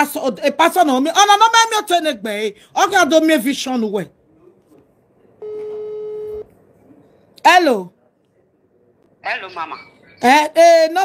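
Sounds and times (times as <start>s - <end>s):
telephone ringback beep: 5.4s - 6.5s.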